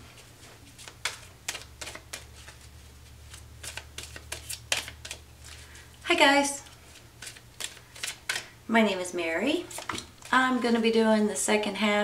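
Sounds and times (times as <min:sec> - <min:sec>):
cards clicking and tapping: 0:00.8 - 0:02.7, 0:03.3 - 0:05.8, 0:06.9 - 0:08.5.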